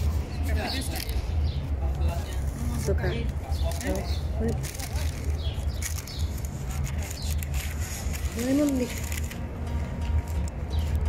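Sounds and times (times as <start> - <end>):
small birds chirping: 0.0 - 9.2.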